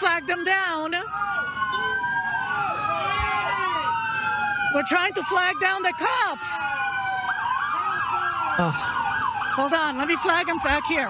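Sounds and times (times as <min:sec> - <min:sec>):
police siren: 0:00.0 - 0:11.0.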